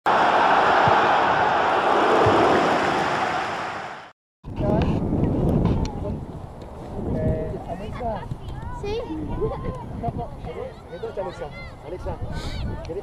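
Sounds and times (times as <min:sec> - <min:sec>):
loud rushing intro effect: 0:00.1 - 0:04.1
wind buffeting microphone: 0:01.1 - 0:13.0.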